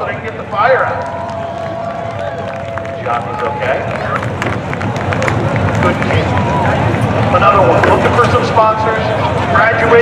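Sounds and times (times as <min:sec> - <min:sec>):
steady low rumble: 0:01.1 - 0:09.6
spectators talking indistinctly: 0:01.4 - 0:10.0.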